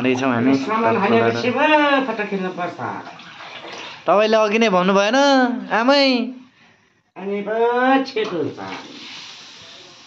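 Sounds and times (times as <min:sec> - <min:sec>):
soup splashing and pouring: 0:03.0 - 0:04.1, 0:08.6 - 0:10.0.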